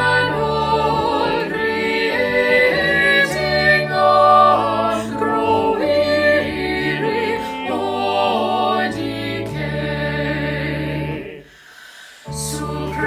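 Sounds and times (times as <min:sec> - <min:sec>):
group singing a hymn: 0:00.0 - 0:11.6, 0:12.3 - 0:13.0
keyboard accompaniment: 0:00.0 - 0:11.6, 0:12.2 - 0:13.0.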